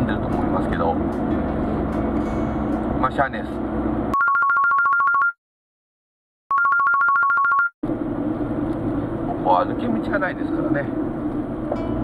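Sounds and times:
electronic telephone ringing: 4.1s - 5.4s, 6.5s - 7.7s.

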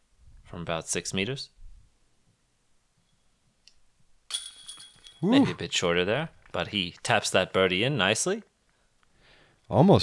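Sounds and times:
disc hitting metal chains: 4.3s - 5.4s.

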